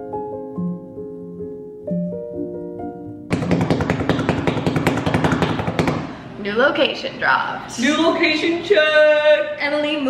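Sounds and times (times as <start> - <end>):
hands slapping a countertop: 3.3 - 6.2.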